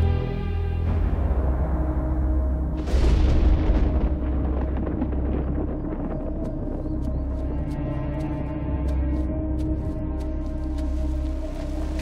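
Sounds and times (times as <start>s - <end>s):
dark music with low drone: 0.0s - 12.0s
thunder clap rumbling: 2.8s - 7.4s.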